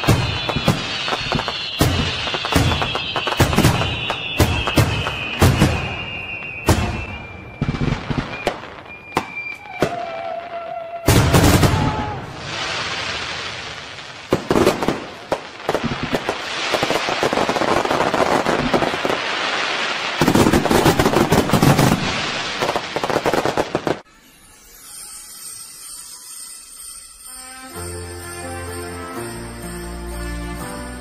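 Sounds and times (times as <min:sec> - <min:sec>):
fireworks crackling and banging: 0:00.0 - 0:27.4.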